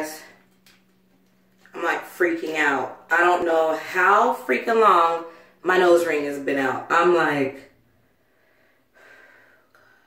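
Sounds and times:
person breathing faintly: 0:08.0 - 0:10.0.

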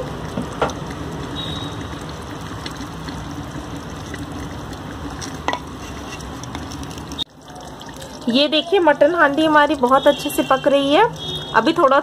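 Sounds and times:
food sizzling in oil: 0:05.4 - 0:07.3.

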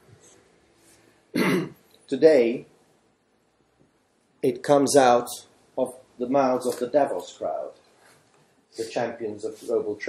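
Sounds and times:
man clearing throat: 0:01.4 - 0:01.8.

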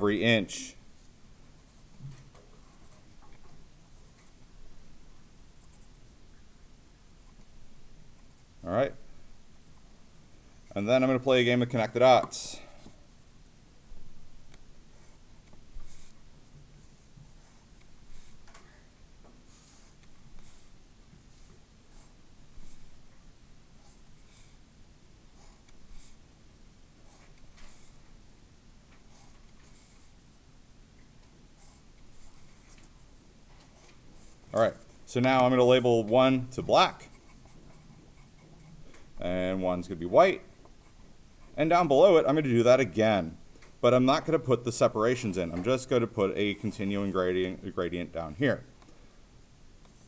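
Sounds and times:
pencil scratching on paper: 0:14.9 - 0:16.2, 0:16.8 - 0:18.4, 0:19.5 - 0:23.0, 0:23.8 - 0:24.6, 0:25.4 - 0:26.2, 0:27.0 - 0:28.0, 0:29.0 - 0:30.3, 0:31.6 - 0:32.9, 0:37.0 - 0:38.7.

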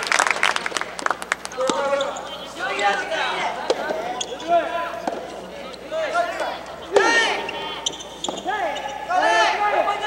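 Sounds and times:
voices calling out indoors: 0:01.5 - 0:10.0
tennis ball bouncing on court: 0:01.6 - 0:01.9, 0:03.6 - 0:04.3, 0:05.0 - 0:05.3, 0:08.2 - 0:08.5.

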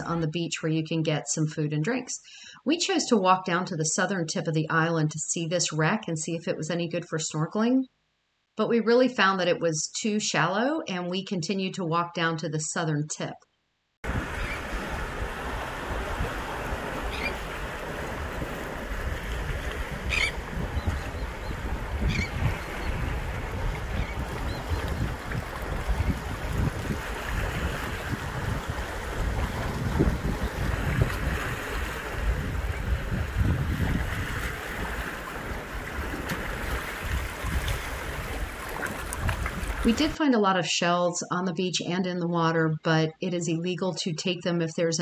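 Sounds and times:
sea surf on rocky shore: 0:14.0 - 0:40.2
wind rumbling on microphone: 0:14.0 - 0:40.2.

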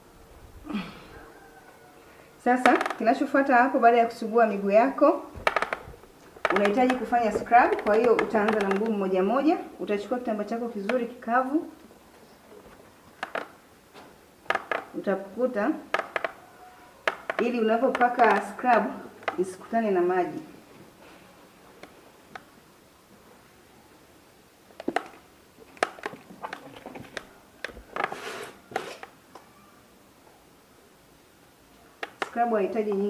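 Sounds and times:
handling clicks and knocks: 0:05.3 - 0:09.2, 0:12.6 - 0:15.0, 0:15.9 - 0:16.4, 0:17.0 - 0:19.7, 0:24.7 - 0:28.2, 0:32.0 - 0:33.0.

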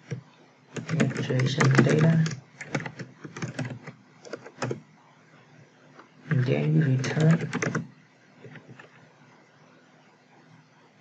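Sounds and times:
typing on computer keyboard: 0:00.0 - 0:04.8, 0:06.9 - 0:08.9.

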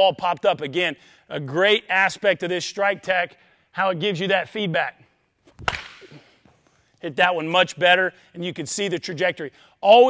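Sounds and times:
bat striking softball: 0:05.5 - 0:06.3
swish of ball and rod: 0:05.5 - 0:06.3.

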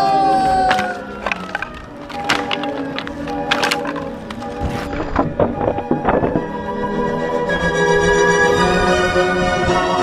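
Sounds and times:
wooden deck cracking: 0:00.0 - 0:06.7
wood clacking on asphalt: 0:00.0 - 0:06.9
background music: 0:00.0 - 0:10.0.

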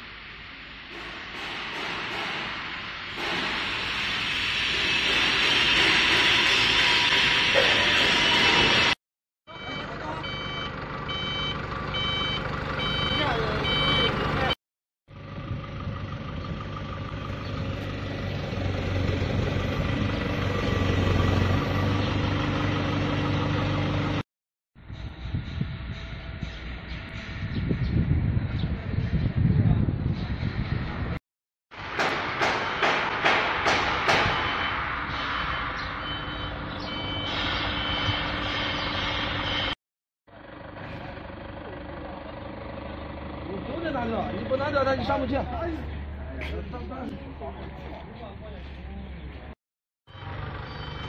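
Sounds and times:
forklift engine humming: 0:08.7 - 0:24.2, 0:34.8 - 0:47.8, 0:50.1 - 0:51.0
reversing alarm beeping: 0:09.5 - 0:14.6, 0:34.2 - 0:39.8, 0:50.1 - 0:51.0.

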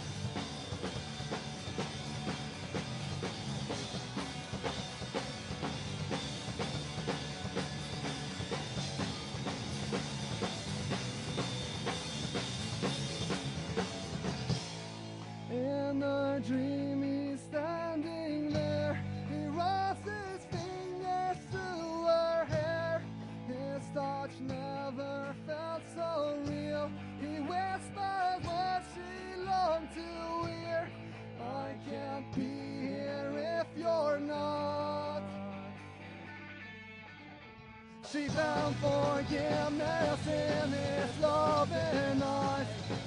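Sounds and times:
punk rock band playing live: 0:00.0 - 0:37.2, 0:38.0 - 0:43.0.

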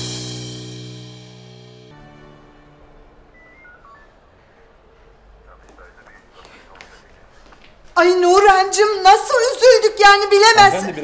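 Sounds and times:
office room tone: 0:01.9 - 0:11.0
faint electronic beeps: 0:02.7 - 0:06.4.

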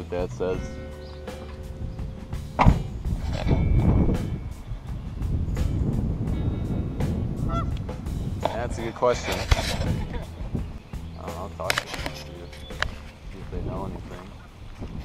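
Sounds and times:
wind on microphone: 0:00.4 - 0:15.0
sharp knock: 0:02.6 - 0:03.0
geese honking: 0:07.4 - 0:07.8.

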